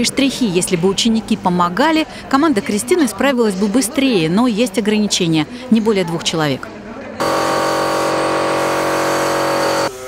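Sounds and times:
compressor hum: 7.2s - 10.0s.

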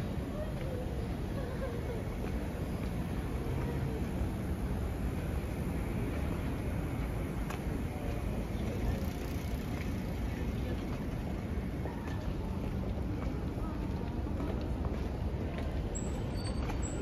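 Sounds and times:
indistinct voices of passers-by: 0.0s - 17.0s
road traffic rumble: 0.0s - 17.0s.

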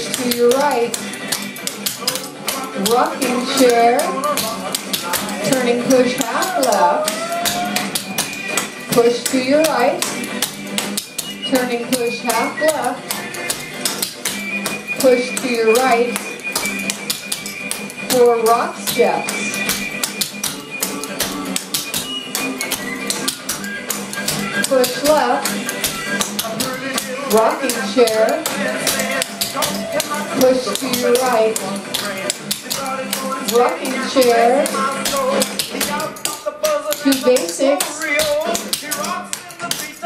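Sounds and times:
rock and roll music: 0.0s - 40.0s.

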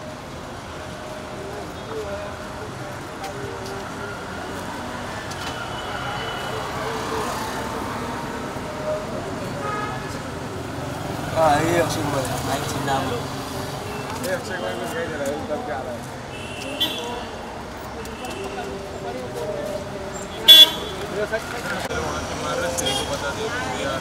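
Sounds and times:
road traffic: 0.0s - 24.0s
people talking at a distance: 0.8s - 24.0s.

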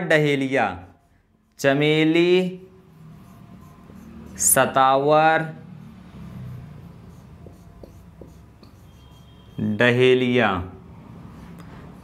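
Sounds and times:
marker scratching on whiteboard: 0.0s - 12.0s.

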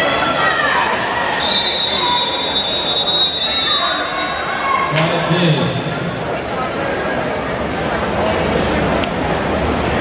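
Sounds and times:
long high whistle blast: 1.4s - 4.2s.

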